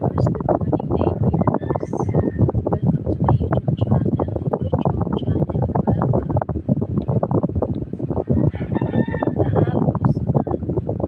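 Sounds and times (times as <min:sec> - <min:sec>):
woman talking: 0:00.0 - 0:06.5, 0:09.0 - 0:10.6
rooster crowing: 0:08.4 - 0:09.8.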